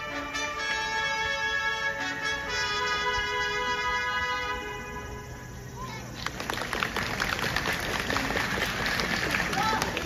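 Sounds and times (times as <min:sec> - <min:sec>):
audience applauding: 0:06.2 - 0:10.0
cheering voices: 0:09.1 - 0:10.0.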